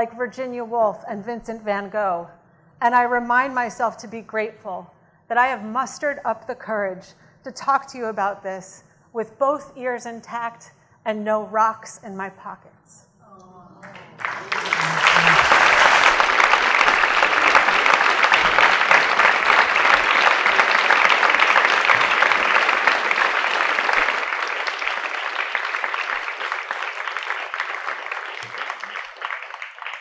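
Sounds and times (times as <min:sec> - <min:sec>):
audience applauding: 0:13.8 - 0:30.0.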